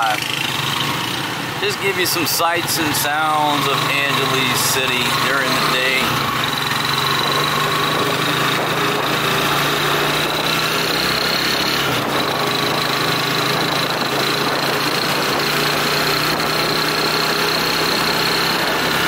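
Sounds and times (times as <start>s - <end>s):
small vehicle engine running: 0.0s - 19.0s.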